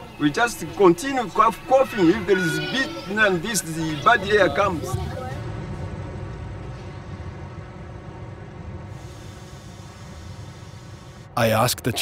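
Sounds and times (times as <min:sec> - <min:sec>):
faint hum: 0:03.4 - 0:12.0
industrial machinery rumble: 0:04.8 - 0:11.4.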